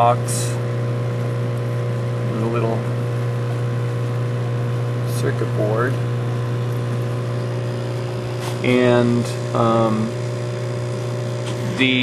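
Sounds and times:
machine hum with low drone: 0.0s - 12.0s.

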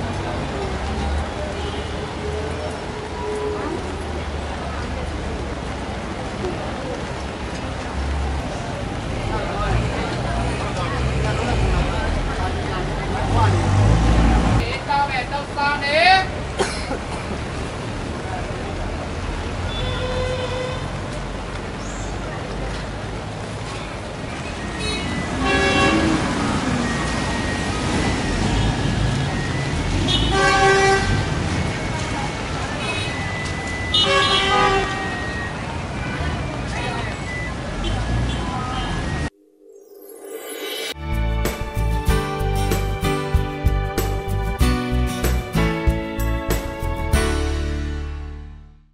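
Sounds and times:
people's voices: 0.0s - 19.3s
low rumble of passing traffic: 0.0s - 35.0s
busy street market: 0.0s - 39.4s, 40.0s - 48.9s
vehicle horn blast: 24.8s - 26.2s.

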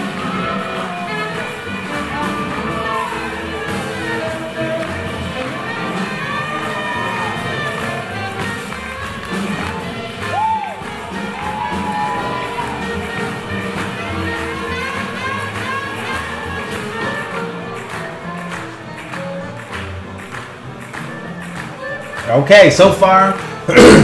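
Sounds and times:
audience cheering: 0.0s - 19.9s
swing jazz band playing: 0.0s - 24.0s.

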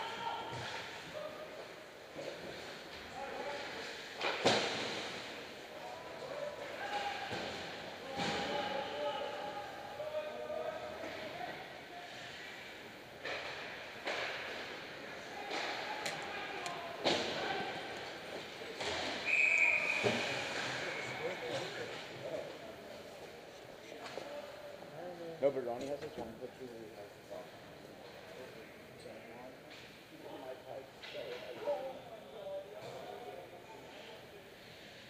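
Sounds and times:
voices in rink: 0.0s - 35.0s
whistle blast: 19.2s - 20.4s.

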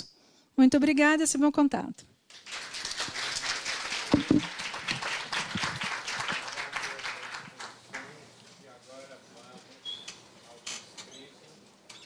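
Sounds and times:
audience applauding: 2.3s - 8.2s.

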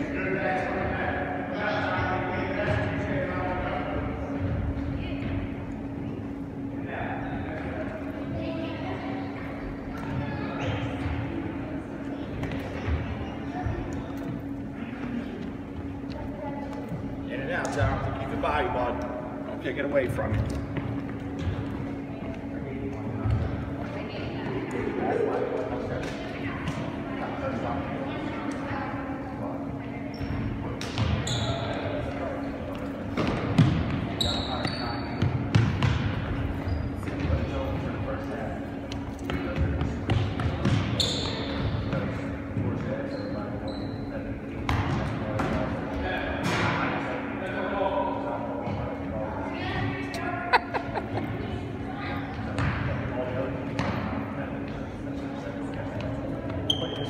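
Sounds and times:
murmur of voices: 0.0s - 57.0s
steady low hum: 0.0s - 57.0s
ball bouncing on hard floor: 34.6s - 36.3s, 38.9s - 42.8s
short high squeaks: 43.1s - 44.1s.

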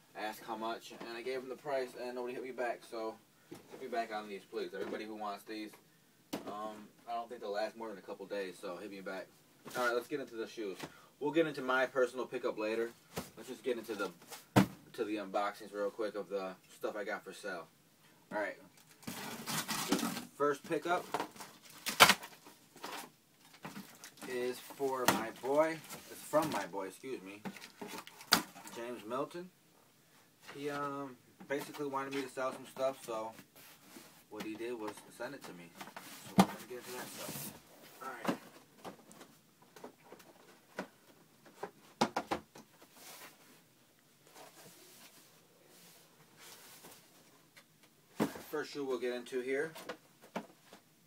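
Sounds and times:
rustling of shoe in cardboard box: 19.0s - 23.1s, 35.7s - 39.2s.

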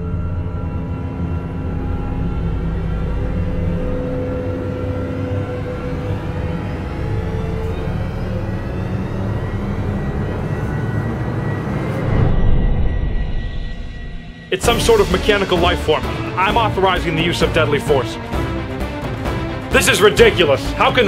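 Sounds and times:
deep steady rumble: 0.0s - 19.8s
rising sweep: 0.0s - 21.0s.

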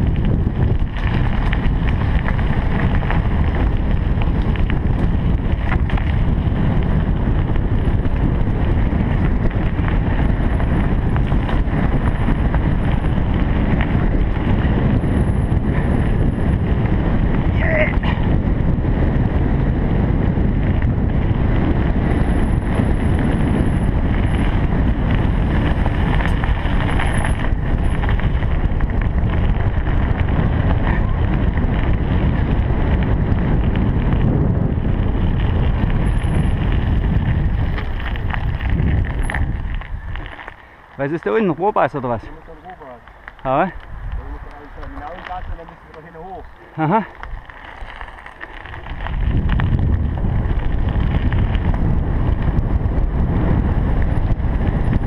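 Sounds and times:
bicycle rolling on gravel: 0.0s - 55.0s
wind buffeting microphone: 0.0s - 55.0s.

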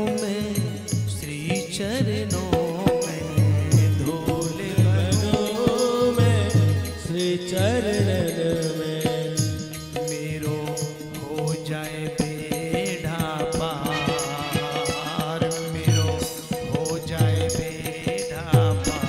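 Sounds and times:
drum beat: 0.0s - 8.6s, 12.2s - 19.0s
man singing into a microphone: 0.0s - 19.0s.

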